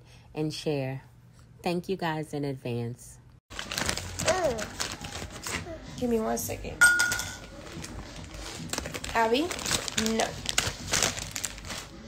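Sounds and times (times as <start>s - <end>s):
crinkly handling rustles: 3.5s - 5.8s, 7.4s - 12.0s.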